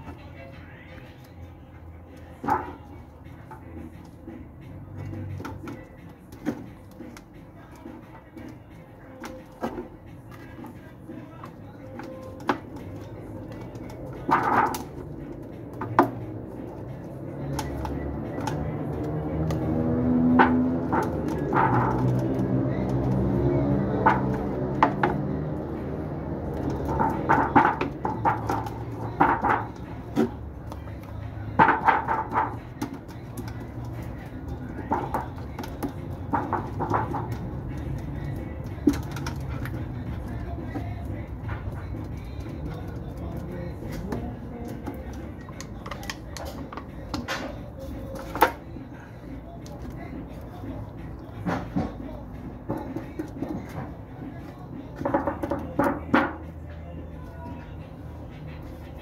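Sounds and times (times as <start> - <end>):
background music: 0.0 - 59.0
handling taps and knocks: 5.0 - 48.7, 49.6 - 56.6.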